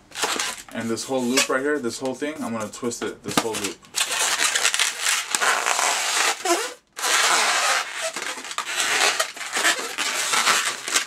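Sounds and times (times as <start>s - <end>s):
balloon rubbing and squeaking: 0.1s - 1.8s, 3.6s - 11.0s.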